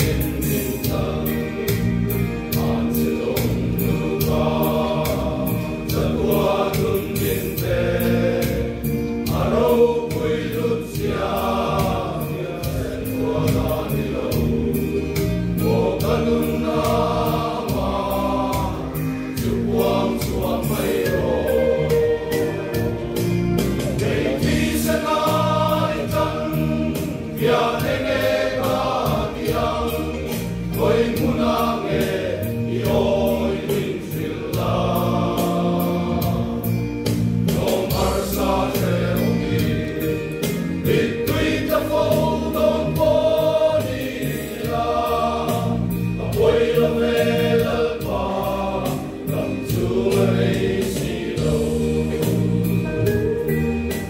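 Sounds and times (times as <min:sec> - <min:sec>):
men's choir singing a hymn: 0:00.0 - 0:54.0.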